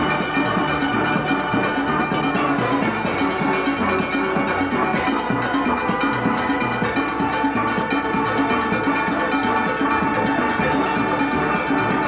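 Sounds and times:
low repeating bass notes: 0:00.0 - 0:12.0
steel band playing: 0:00.0 - 0:12.0.

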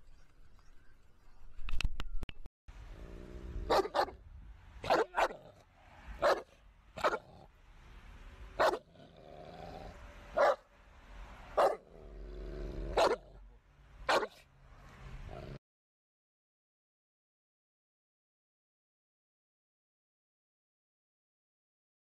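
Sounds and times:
dog barking loudly: 0:03.6 - 0:04.2, 0:04.8 - 0:07.4, 0:08.6 - 0:09.0, 0:10.4 - 0:10.7, 0:11.6 - 0:11.9, 0:12.9 - 0:13.3, 0:14.1 - 0:14.4.

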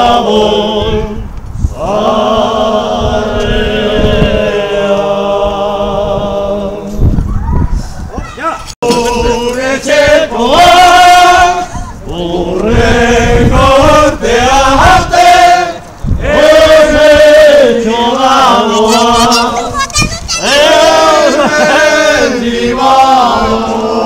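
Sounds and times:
crowd singing in unison: 0:00.0 - 0:07.2, 0:08.8 - 0:19.8, 0:20.4 - 0:24.0.

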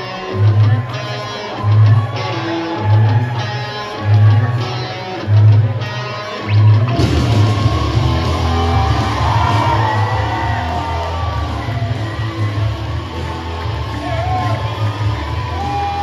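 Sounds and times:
rock music over loudspeakers: 0:00.0 - 0:16.0.

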